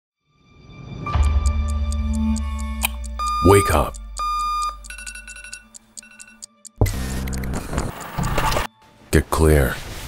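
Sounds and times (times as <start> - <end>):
alarm clock beeping: 1.2 - 8.7.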